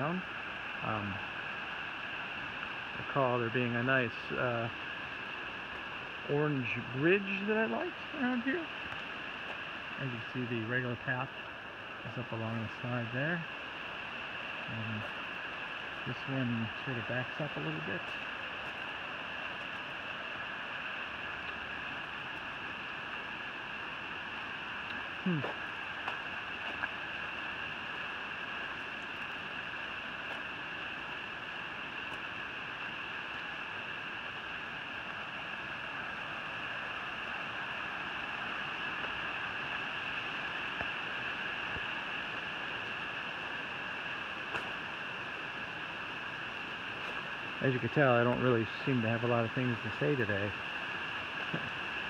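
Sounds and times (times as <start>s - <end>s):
mountain stream rushing: 0.0s - 52.0s
person humming: 25.2s - 25.6s.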